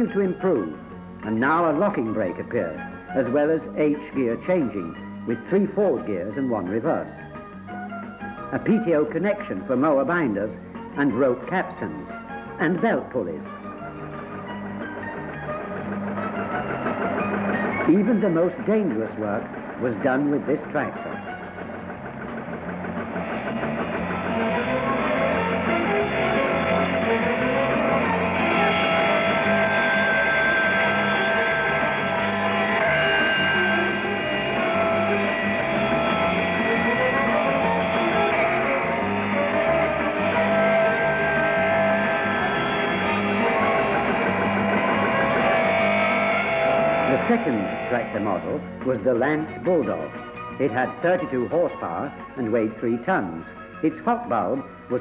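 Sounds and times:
plucked guitar and bass music: 12.4s - 55.0s.

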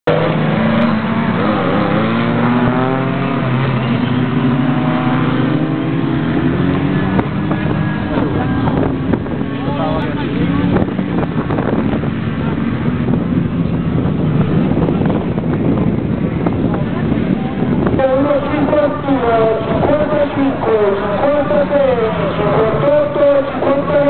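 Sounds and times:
car engine revving: 0.0s - 24.0s.

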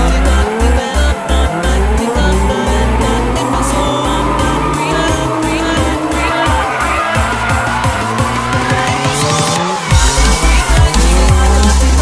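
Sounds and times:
car engine revving: 0.0s - 12.0s
electronic music with steady beat: 0.0s - 12.0s
tyres squealing: 0.0s - 12.0s.

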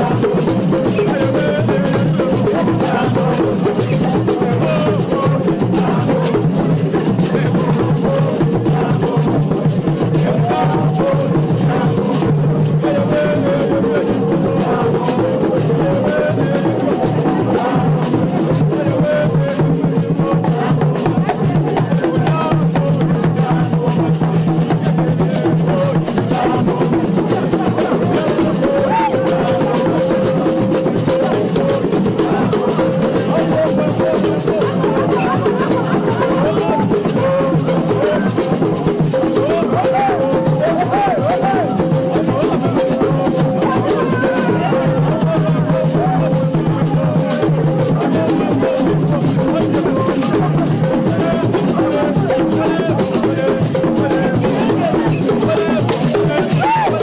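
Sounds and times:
drums beating fast rhythm: 0.0s - 57.0s
group singing: 0.0s - 57.0s.

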